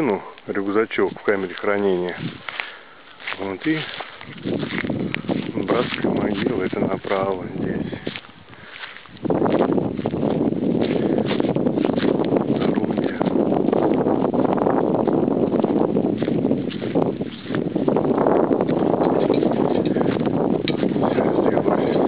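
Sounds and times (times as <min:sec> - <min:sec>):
footsteps on dry ground: 0:00.0 - 0:22.0
wind buffeting microphone: 0:00.0 - 0:22.0.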